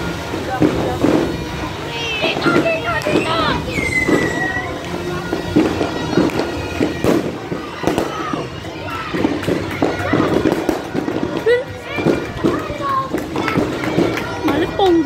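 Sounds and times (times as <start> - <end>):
firecrackers cracking: 0.0 - 15.0
people's voices and calls: 0.0 - 15.0.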